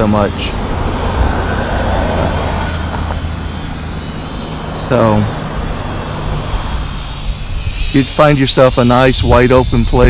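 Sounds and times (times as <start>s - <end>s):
low outdoor rumble: 0.0s - 10.0s
toy drone motor whine: 0.0s - 10.0s.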